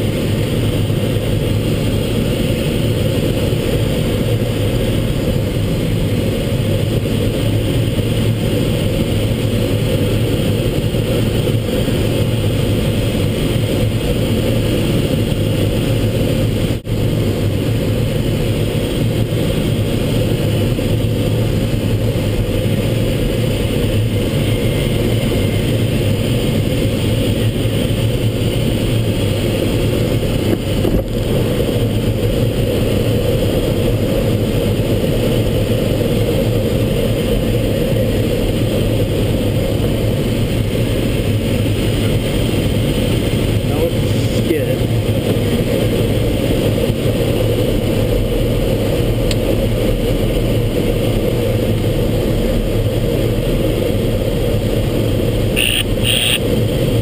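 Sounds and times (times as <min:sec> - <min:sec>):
airflow rushing around cockpit: 0:00.0 - 0:57.0.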